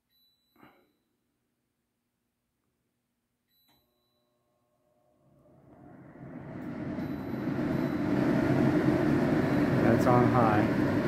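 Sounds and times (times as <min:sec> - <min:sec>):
range hood fan running: 0:05.0 - 0:11.0.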